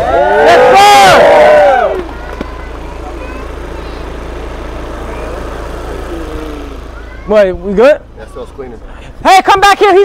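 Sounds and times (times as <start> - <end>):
diesel engine idling: 0.0 - 10.0
faint voices: 1.7 - 9.3.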